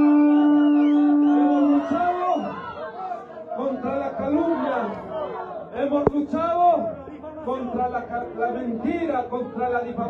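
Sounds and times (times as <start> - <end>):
horn holding a long note: 0.0 - 1.9
crowd cheering: 0.0 - 5.6.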